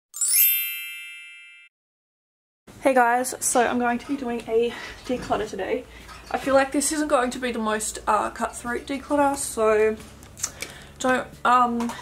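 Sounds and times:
shimmering chime: 0.2 - 1.7.

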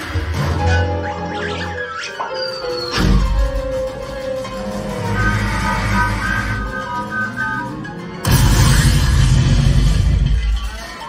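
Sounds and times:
cartoon soundtrack music: 0.0 - 11.0.

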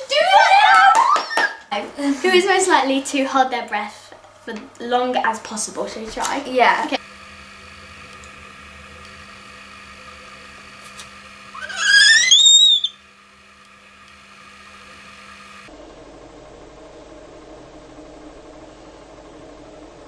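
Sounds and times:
girl's high-pitched squeal: 0.0 - 1.6, 11.6 - 12.9
faint room hum: 0.0 - 20.0.

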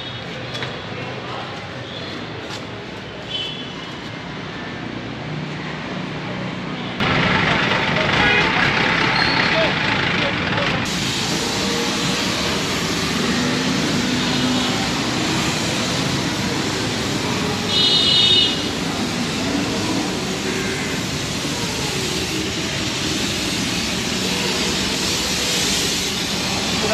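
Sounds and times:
steady traffic: 0.0 - 26.9
truck engine running: 7.0 - 17.5
hose spraying water on pavement: 10.9 - 26.9.

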